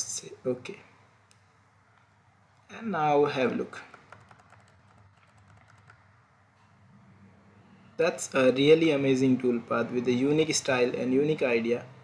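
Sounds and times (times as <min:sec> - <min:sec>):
computer mouse and keyboard clicking: 0:03.8 - 0:06.1.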